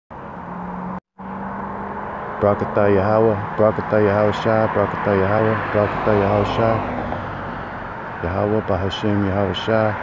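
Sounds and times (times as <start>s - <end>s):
engine hum: 0.1s - 10.0s.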